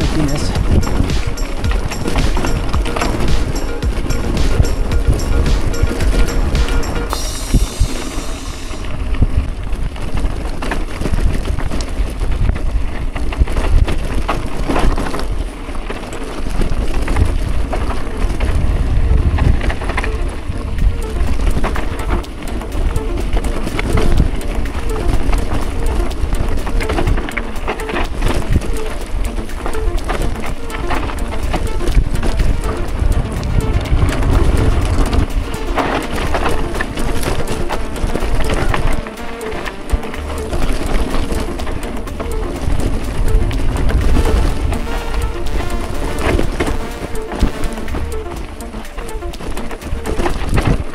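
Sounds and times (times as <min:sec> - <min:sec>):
music: 0:00.0 - 0:09.2, 0:17.0 - 0:50.9
bike rattling over loose rock: 0:09.0 - 0:22.7
wind buffeting microphone: 0:16.4 - 0:21.9.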